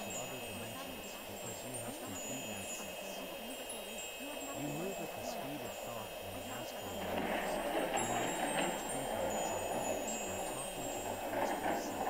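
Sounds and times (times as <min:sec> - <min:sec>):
tinkling wind chimes: 0:00.0 - 0:12.0.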